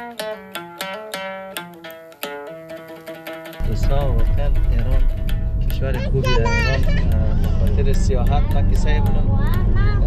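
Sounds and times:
music playing: 0.0s - 10.0s
car road and engine rumble: 3.6s - 10.0s.

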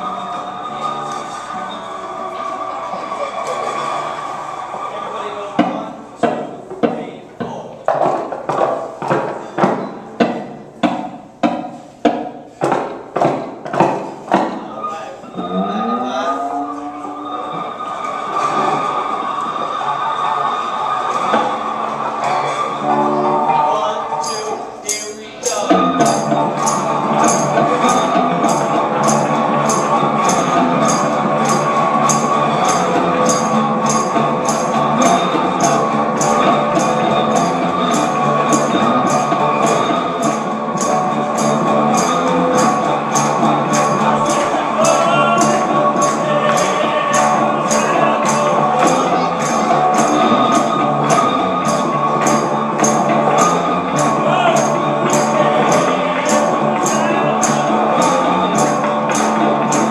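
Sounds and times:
slide guitars playing: 0.0s - 59.9s
high tapping beat: 24.3s - 59.9s.

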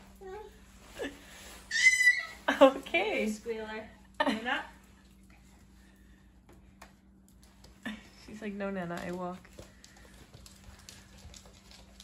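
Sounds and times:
baby squealing: 1.7s - 2.4s
baby voiced sounds: 1.7s - 2.4s.

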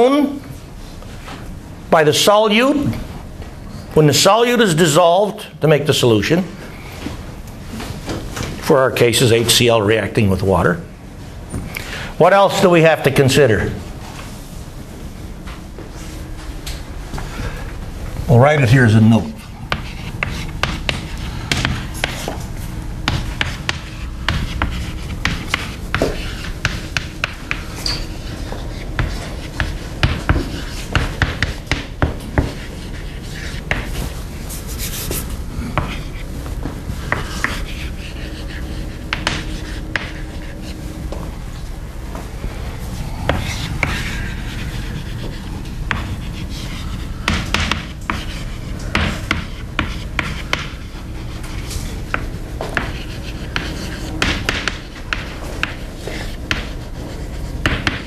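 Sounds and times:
low room hum: 0.0s - 58.0s
chalk writing on chalkboard: 19.4s - 41.2s, 42.9s - 58.0s.

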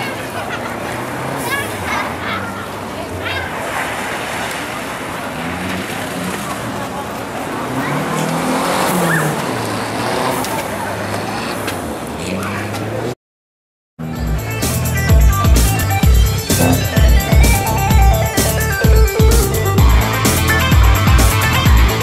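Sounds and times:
car engine revving: 0.0s - 13.2s, 14.5s - 22.0s.

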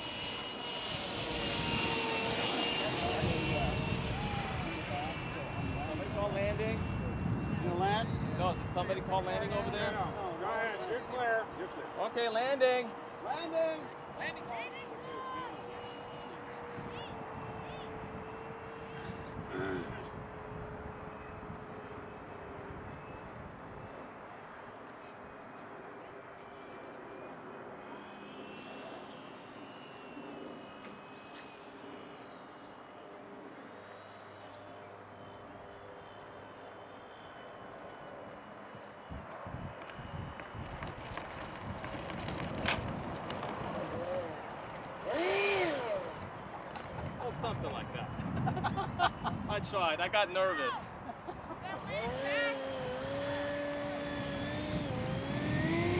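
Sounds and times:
electric ducted fan whine: 0.0s - 55.9s.

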